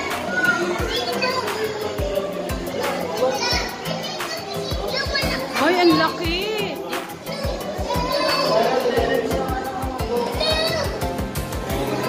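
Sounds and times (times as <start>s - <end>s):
background music with a beat: 0.0s - 12.0s
children chattering: 0.0s - 12.0s.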